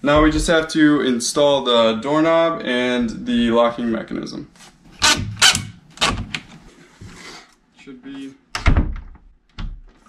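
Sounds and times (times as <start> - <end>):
door hardware clicks and knocks: 8.6 - 9.9.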